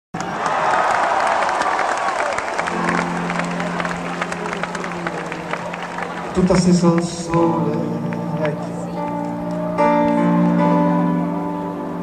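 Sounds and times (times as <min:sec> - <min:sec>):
audience applauding and cheering: 0:00.2 - 0:11.4.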